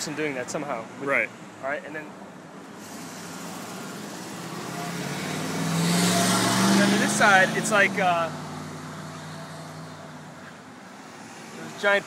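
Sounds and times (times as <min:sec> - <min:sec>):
car driving past: 0:02.9 - 0:10.4.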